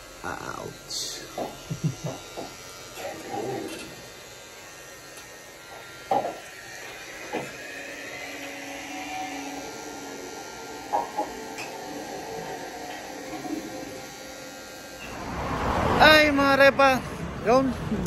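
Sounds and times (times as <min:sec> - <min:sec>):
tattoo machine motor buzz: 0:00.0 - 0:17.8.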